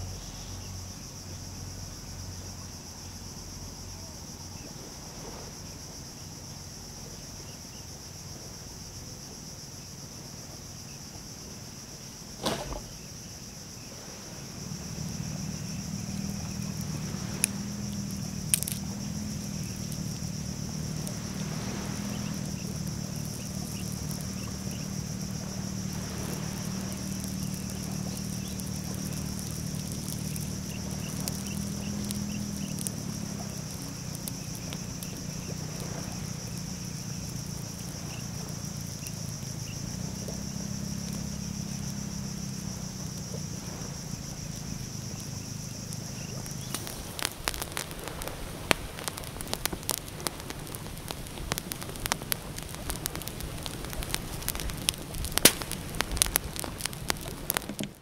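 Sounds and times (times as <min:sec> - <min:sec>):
insects droning: 0:00.0 - 0:58.0
campfire crackling and popping: 0:12.3 - 0:13.1, 0:14.5 - 0:58.0.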